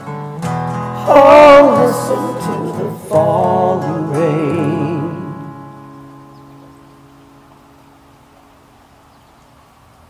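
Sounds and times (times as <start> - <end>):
acoustic guitar chord ringing: 0.0 - 7.5.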